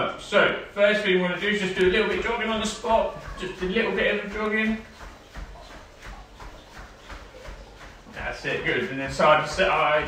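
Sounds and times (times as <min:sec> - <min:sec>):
bare feet thudding on foam mat: 0:01.5 - 0:10.0.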